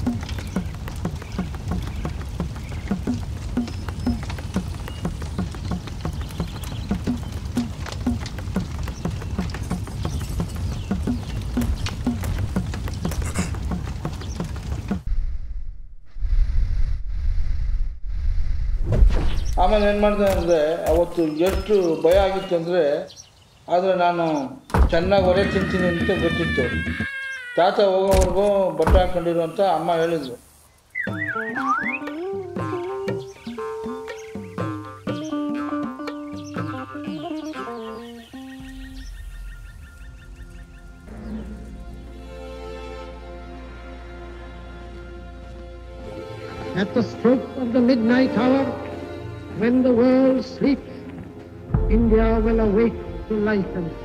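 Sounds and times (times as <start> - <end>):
short low thuds beat: 0.0 - 15.9
man narrating: 19.5 - 26.9, 27.6 - 30.4, 46.7 - 51.1, 51.8 - 54.0.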